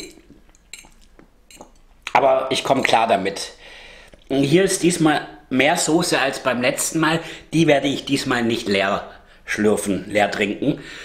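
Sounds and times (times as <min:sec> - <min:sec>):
fork clinking on ceramic bowl: 0:00.0 - 0:01.9.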